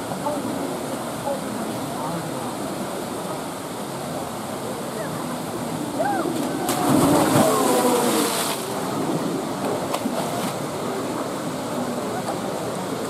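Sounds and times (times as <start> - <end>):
animal splashing into water: 6.4 - 8.8.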